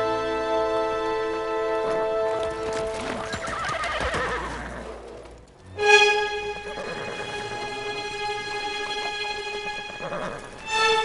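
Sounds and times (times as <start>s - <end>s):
music: 0.0s - 11.0s
hooves clopping: 1.1s - 11.0s
horse whinnying: 2.9s - 5.0s, 6.6s - 7.7s, 9.8s - 10.6s.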